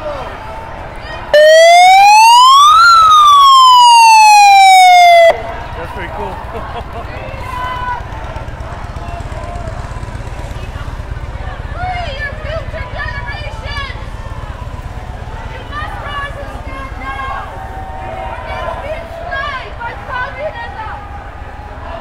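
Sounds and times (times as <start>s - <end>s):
electronic siren wail: 1.4s - 5.5s.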